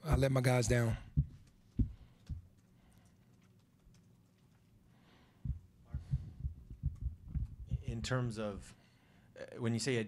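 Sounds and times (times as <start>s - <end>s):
man speaking: 0.0s - 1.1s, 7.7s - 8.8s
microphone handling thumps: 0.1s - 2.0s, 5.5s - 8.7s.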